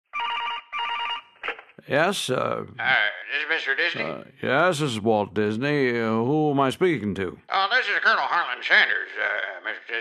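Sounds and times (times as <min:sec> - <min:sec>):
telephone ringing: 0:00.1 - 0:01.5
man speaking: 0:01.8 - 0:10.0.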